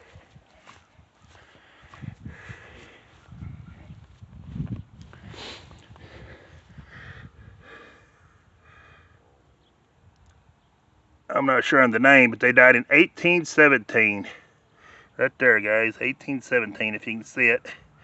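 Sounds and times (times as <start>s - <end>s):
footsteps on grass: 0.0s - 6.0s.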